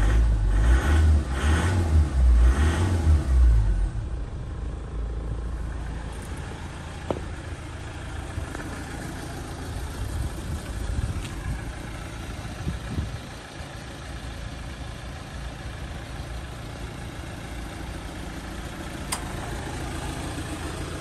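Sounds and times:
diesel engine revving and idling: 0:00.0 - 0:21.0.

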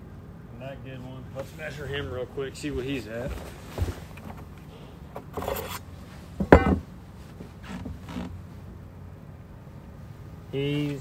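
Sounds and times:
scraping rustle: 0:01.3 - 0:08.7
sharp knocks on boat deck: 0:06.4 - 0:06.9.

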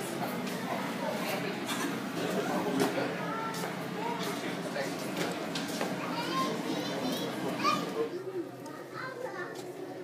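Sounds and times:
crowd babble: 0:00.0 - 0:10.0
children chattering and calling: 0:00.3 - 0:10.0.

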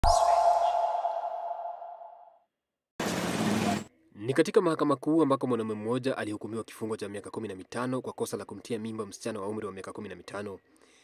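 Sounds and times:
ringing tone: 0:00.0 - 0:02.3.

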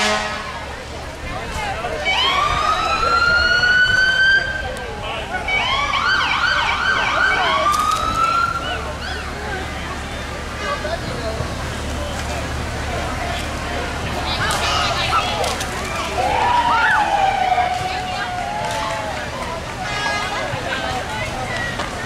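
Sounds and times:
emergency vehicle siren: 0:01.7 - 0:10.5, 0:11.8 - 0:21.9.

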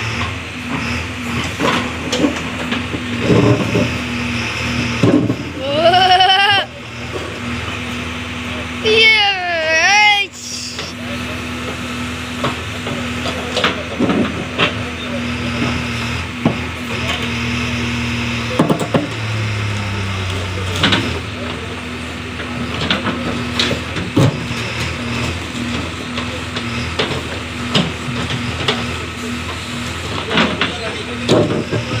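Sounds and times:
diesel engine running: 0:00.0 - 0:32.0
digger bucket knocking and scraping: 0:00.1 - 0:04.2, 0:04.8 - 0:05.6.

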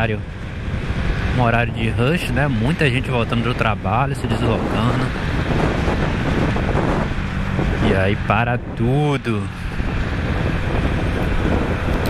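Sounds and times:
motorcycle engine: 0:00.0 - 0:08.8, 0:09.4 - 0:12.0
road noise: 0:00.0 - 0:12.0.

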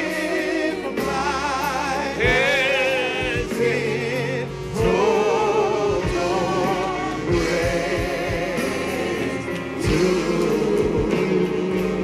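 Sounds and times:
choir singing gospel with band: 0:00.0 - 0:12.0.

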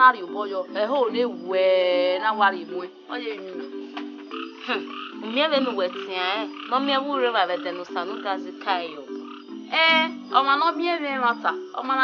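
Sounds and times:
low keyboard notes: 0:00.0 - 0:12.0.

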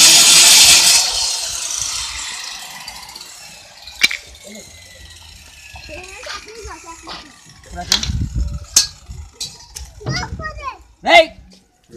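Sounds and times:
children calling and chattering: 0:01.8 - 0:11.9
low rumble: 0:06.7 - 0:10.6.

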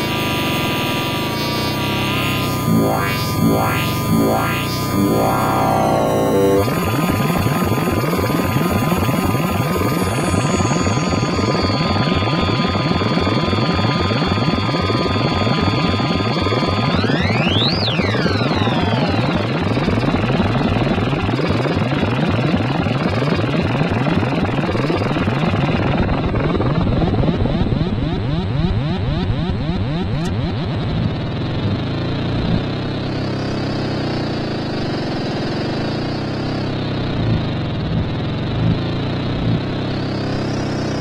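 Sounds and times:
steady high synthesizer tones: 0:00.0 - 0:30.2
tone sweeping up and down: 0:00.0 - 0:30.7
dense synthesizer pulsing throb: 0:00.0 - 0:33.1.

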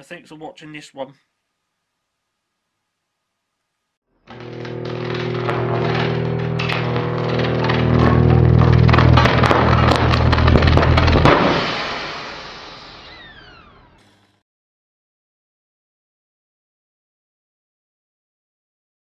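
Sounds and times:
sharp crackling clicks: 0:04.3 - 0:11.6
low droning chord: 0:04.3 - 0:12.4
falling whistling tones: 0:12.4 - 0:13.9.

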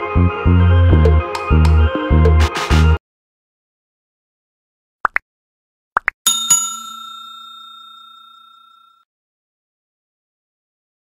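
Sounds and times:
small bell ringing: 0:06.3 - 0:09.0.

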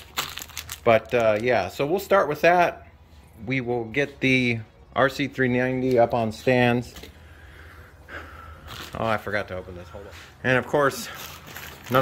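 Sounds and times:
steady low hum: 0:01.8 - 0:11.7
speech: 0:08.9 - 0:11.2.

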